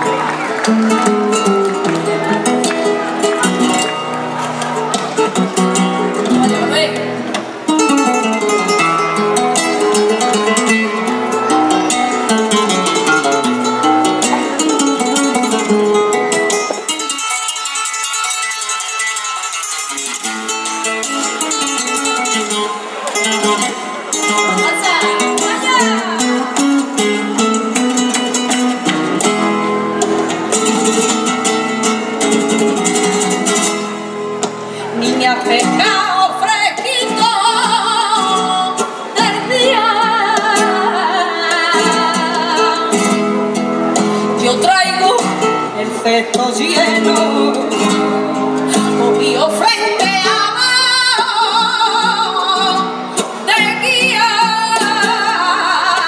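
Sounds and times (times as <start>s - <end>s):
rhythmic handclaps: 0.0s - 5.4s
flamenco guitar: 0.0s - 56.0s
person singing: 34.5s - 56.0s.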